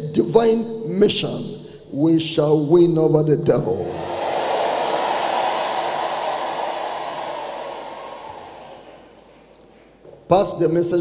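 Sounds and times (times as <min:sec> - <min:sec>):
congregation applauding: 0:03.9 - 0:10.0.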